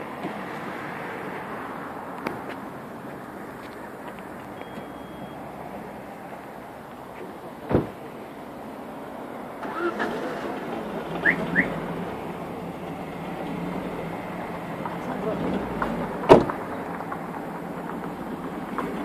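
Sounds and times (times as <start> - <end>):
cars driving past: 0.0 - 19.0
short high chirps: 4.6 - 5.4.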